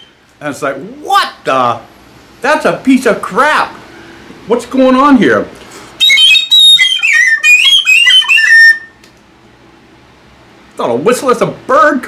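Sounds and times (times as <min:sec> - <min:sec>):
tin whistle shrill high notes: 0:06.0 - 0:09.0.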